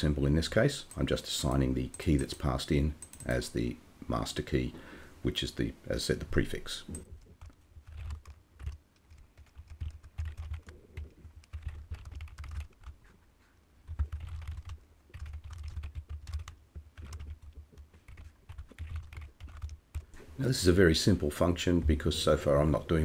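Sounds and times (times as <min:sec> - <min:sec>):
computer keyboard typing: 0:00.9 - 0:03.4, 0:06.9 - 0:13.0, 0:13.8 - 0:20.1.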